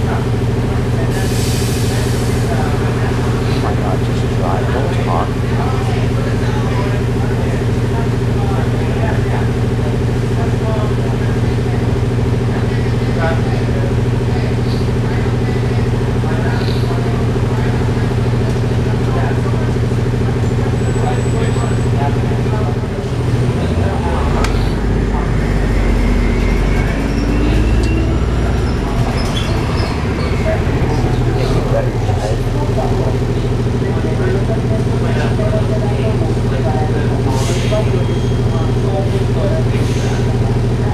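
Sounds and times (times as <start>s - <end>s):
bus diesel engine running: 0.0s - 40.9s.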